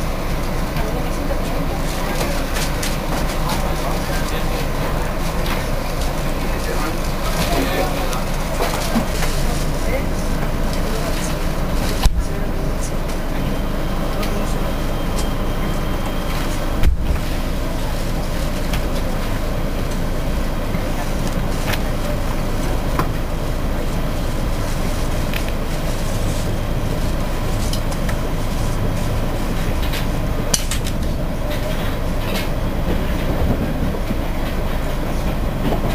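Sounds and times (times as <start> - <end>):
train rumbling: 0.0 - 35.9.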